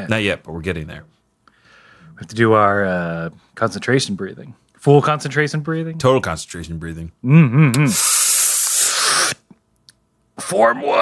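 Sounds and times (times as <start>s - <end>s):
man exhaling forcefully: 7.8s - 9.4s.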